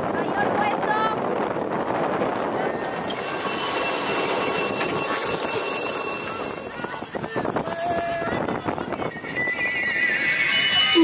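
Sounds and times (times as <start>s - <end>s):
rushing water: 0.0s - 9.7s
wind: 0.0s - 11.0s
loaded line squealing: 2.8s - 7.0s, 9.1s - 11.0s.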